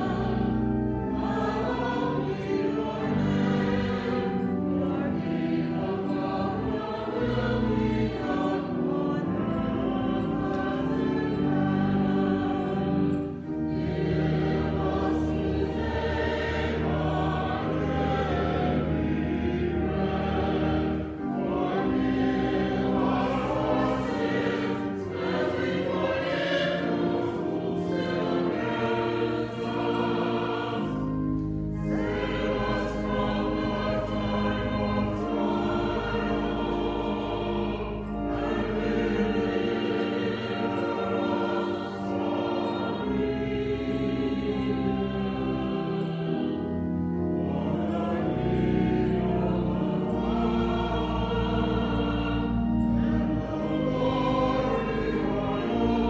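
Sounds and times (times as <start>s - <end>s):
choir singing: 0.0s - 56.0s.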